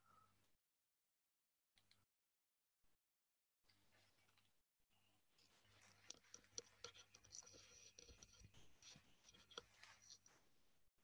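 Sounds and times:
soft clicks and scratchy ticks: 5.4 - 10.5.

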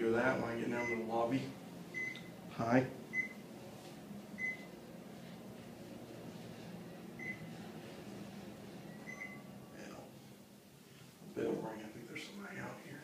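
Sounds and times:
elevator humming: 6.7 - 9.8.

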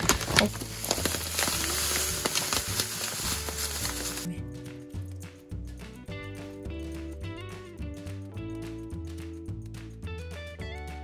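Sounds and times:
breadcrumbs poured into a bowl: 0.0 - 4.3
background music: 0.0 - 11.0.

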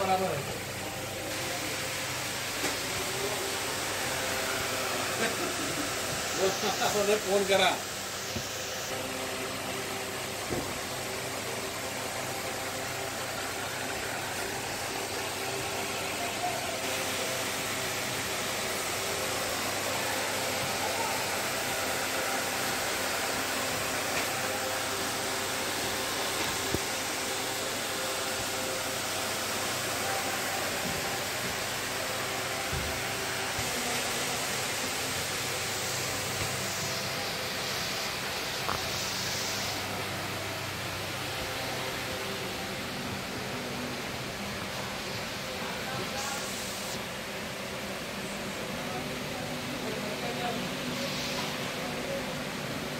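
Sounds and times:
ventilation fans whirring: 0.0 - 52.9.

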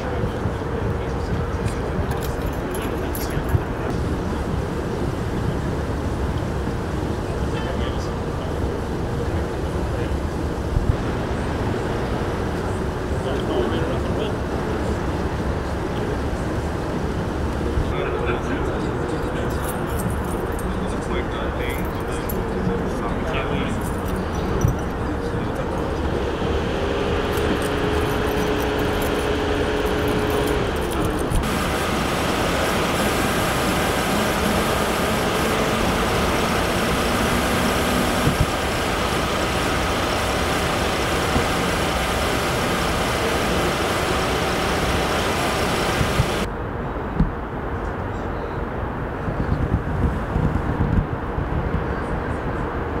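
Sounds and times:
engine hum: 0.0 - 46.5
idling vehicles: 0.0 - 46.5.

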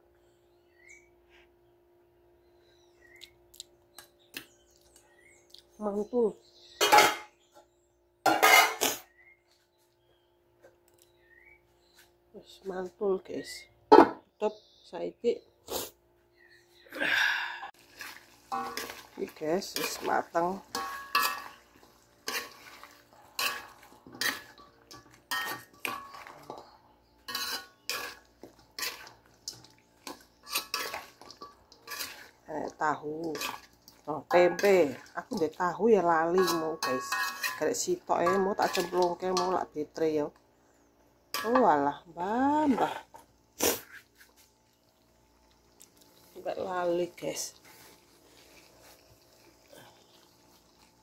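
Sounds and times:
metal spatula scraping wok: 18.0 - 32.4, 33.3 - 35.6, 36.2 - 39.6.

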